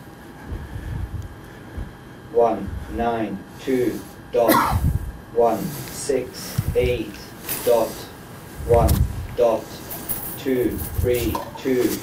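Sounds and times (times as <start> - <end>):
low background rumble: 0.0 - 7.4, 8.0 - 9.7.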